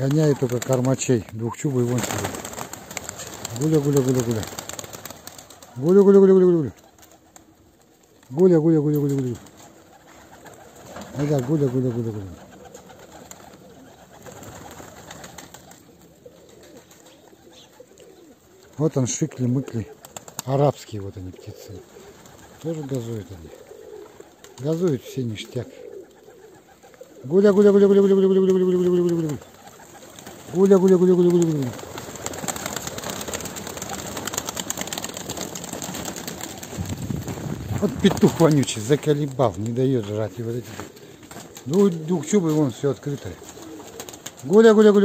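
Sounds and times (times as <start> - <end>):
pigeons cooing: 0.0 - 45.0
pigeons scuffling: 1.9 - 5.8, 28.4 - 39.6, 43.4 - 44.5.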